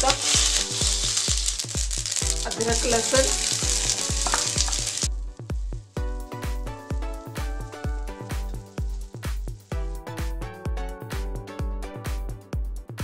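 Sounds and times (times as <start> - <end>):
spices sizzling in hot fat: 0.0 - 10.4
background music with beat: 0.0 - 13.0.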